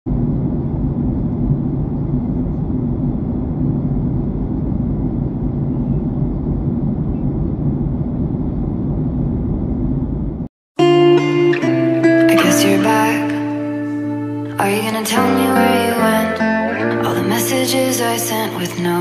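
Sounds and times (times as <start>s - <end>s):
airliner cabin rumble: 0.0s - 10.5s
faint hum: 0.1s - 10.5s.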